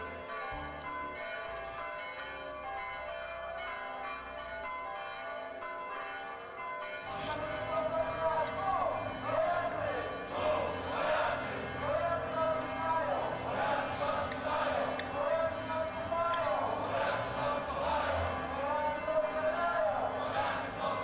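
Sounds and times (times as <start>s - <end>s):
church bells ringing: 0.0s - 21.0s
crowd voices: 7.1s - 21.0s.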